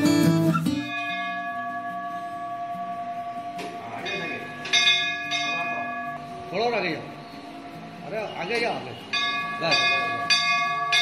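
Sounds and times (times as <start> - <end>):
temple bell ringing: 0.8 - 7.2, 8.4 - 11.0.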